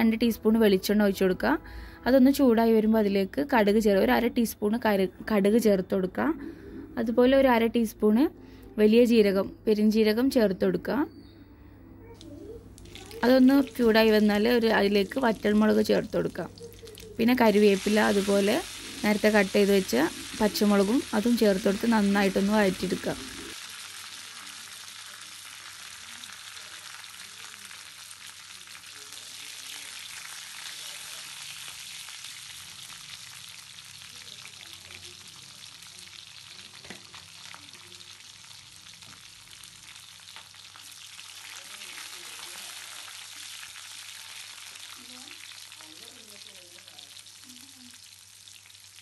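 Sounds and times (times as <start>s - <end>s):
spices sizzling in hot oil: 12.4s - 49.0s.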